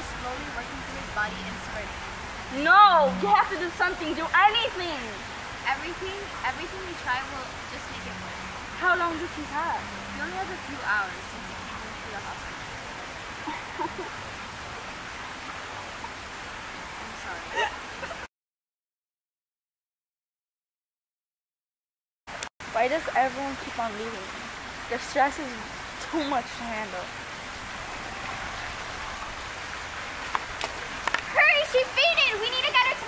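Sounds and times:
steady outdoor background hiss: 0:00.0 - 0:18.3, 0:22.3 - 0:33.0
water splashing from fountain jets: 0:00.0 - 0:18.3, 0:22.3 - 0:33.0.

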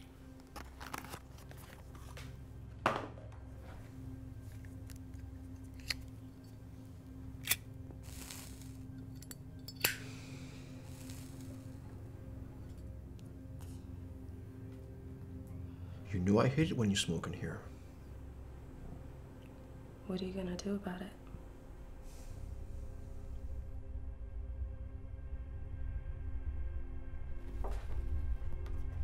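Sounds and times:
low music drone: 0:00.0 - 0:29.0
lighter flame hiss: 0:05.7 - 0:06.1, 0:07.4 - 0:12.1.

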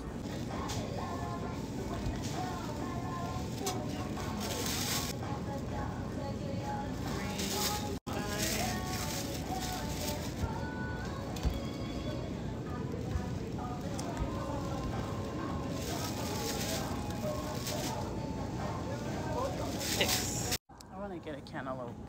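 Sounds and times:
background music: 0:00.0 - 0:22.0
plastic bag crinkling: 0:02.4 - 0:05.2, 0:07.1 - 0:10.5, 0:13.6 - 0:18.2, 0:19.1 - 0:20.6
faint voices: 0:05.7 - 0:21.0.

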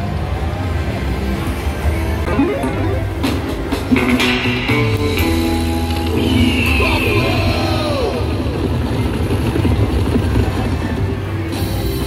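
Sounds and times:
slot machine low rumble: 0:01.4 - 0:06.2.

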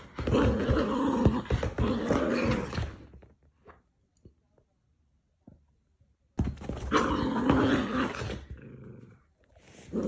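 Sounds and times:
dog play-growling: 0:00.0 - 0:03.1, 0:06.8 - 0:10.0.

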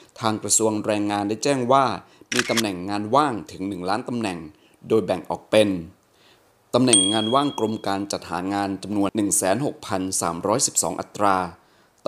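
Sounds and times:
man narrating: 0:06.8 - 0:11.5.

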